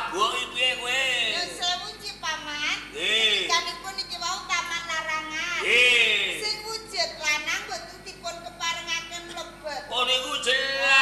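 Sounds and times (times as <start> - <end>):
actors speaking dialogue: 0.0 - 11.0.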